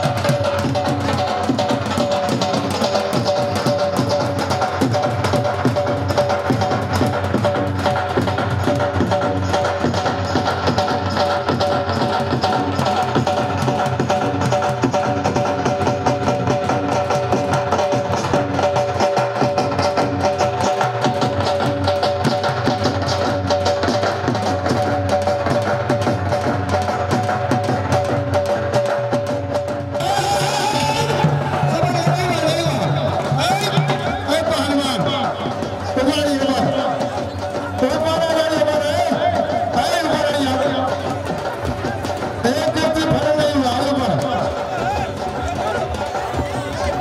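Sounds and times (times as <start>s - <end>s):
fast dense drumming: 0.0s - 47.0s.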